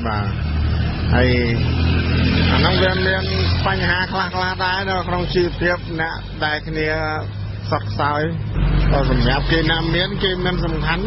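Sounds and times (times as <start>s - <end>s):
vehicle engine rumble: 0.0s - 11.0s.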